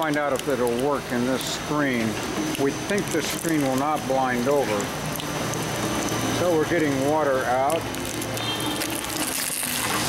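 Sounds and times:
water splashing through screen: 0.0s - 10.0s.

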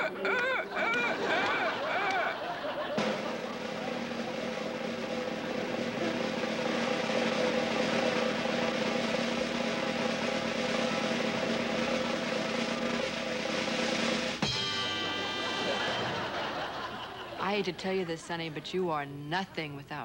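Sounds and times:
drum roll: 0.0s - 18.4s.

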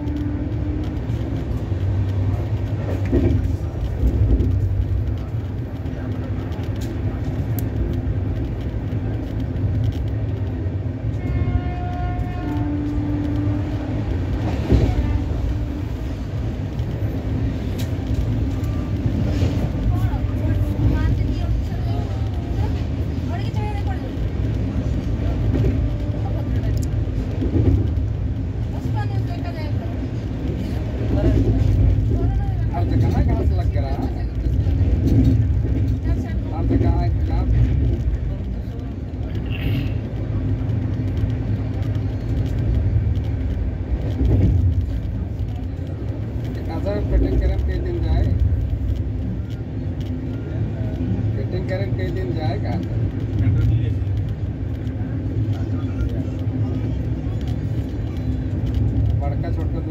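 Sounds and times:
moving train rumble: 0.0s - 59.9s
people talking: 19.8s - 24.2s.

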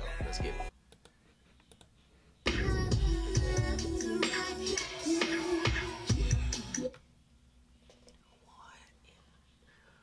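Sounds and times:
r and b song with singing: 0.0s - 0.7s, 2.4s - 7.0s
faint whispering: 7.8s - 10.0s.

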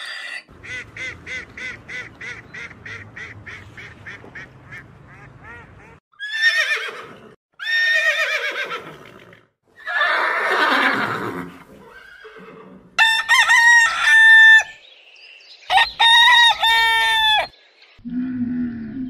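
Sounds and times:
horse whinnying: 6.2s - 12.8s
rooster crowing: 13.0s - 14.8s, 15.7s - 17.5s.

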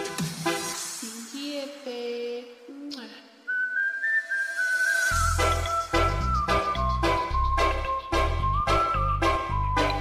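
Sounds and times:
high whistled tune: 3.5s - 10.0s.

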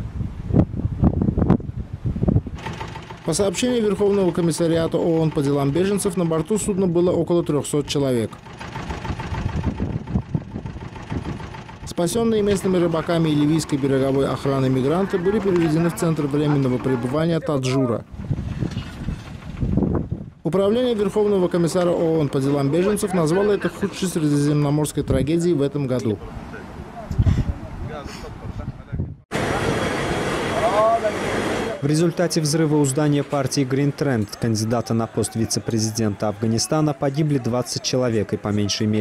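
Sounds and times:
wind buffeting microphone: 0.0s - 5.9s, 8.6s - 24.3s, 26.3s - 29.3s.

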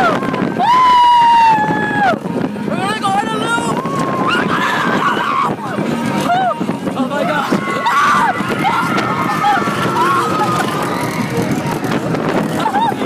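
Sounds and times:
ride rumbling: 0.0s - 13.0s
wind on microphone: 0.0s - 13.0s
person screaming and laughing: 12.6s - 13.0s.

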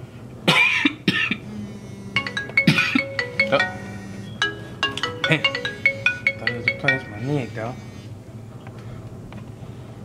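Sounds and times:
man coughing: 0.5s - 1.4s, 2.6s - 3.0s.

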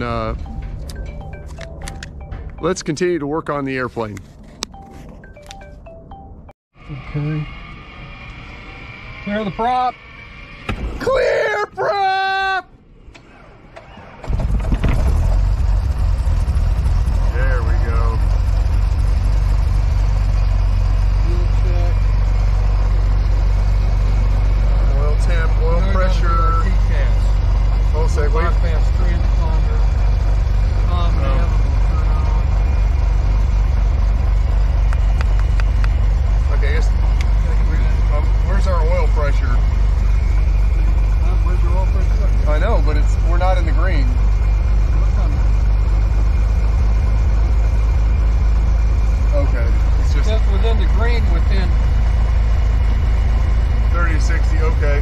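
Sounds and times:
aircraft piston engine running: 6.8s - 11.0s, 13.1s - 55.0s.

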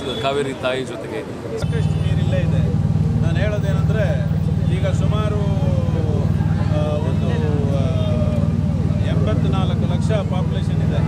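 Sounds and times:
man talking: 0.0s - 11.0s
motorcycle engine idling: 1.6s - 11.0s.

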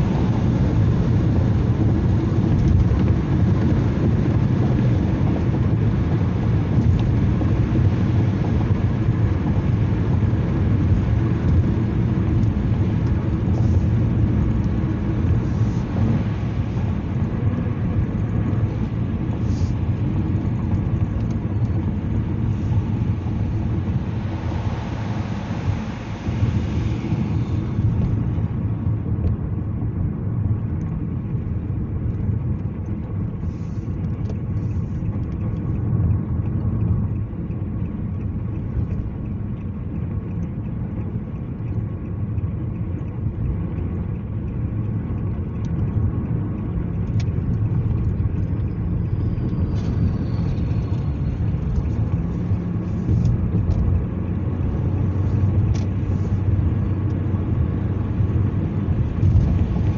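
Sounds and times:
car engine and tyre rumble: 0.0s - 59.9s
faint ticks: 32.1s - 49.9s.

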